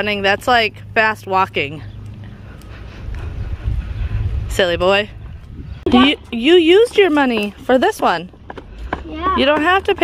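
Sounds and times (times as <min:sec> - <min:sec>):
wind buffeting microphone: 0:02.6 - 0:10.0.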